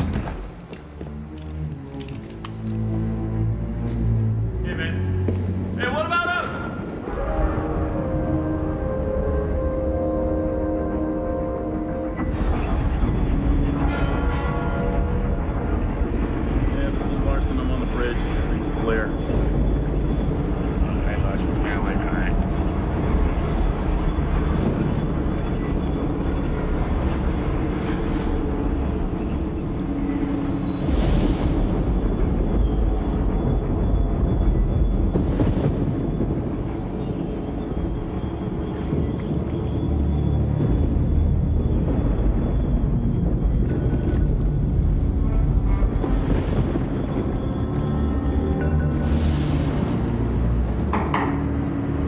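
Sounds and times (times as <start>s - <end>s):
film music: 0.0s - 52.0s
steady low rumble: 6.8s - 52.0s.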